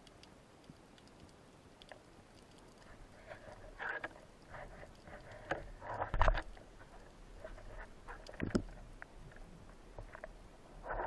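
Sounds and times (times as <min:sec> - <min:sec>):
clicks and crackle: 0:00.0 - 0:11.0
underwater ambience: 0:00.0 - 0:11.0.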